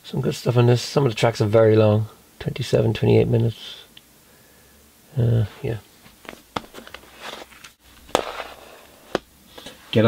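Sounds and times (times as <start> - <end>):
jewel cases rustling: 6.0 - 9.3.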